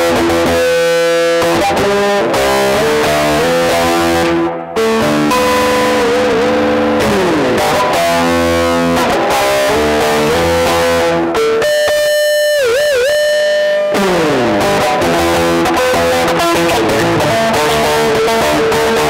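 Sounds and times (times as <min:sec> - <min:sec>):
electric guitar through an amplifier: 0:00.0 - 0:19.0.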